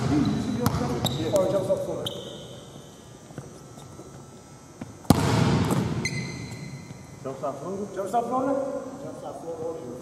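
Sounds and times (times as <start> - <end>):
room noise: 0.0 - 10.0
basketball bouncing on hardwood: 5.1 - 5.9.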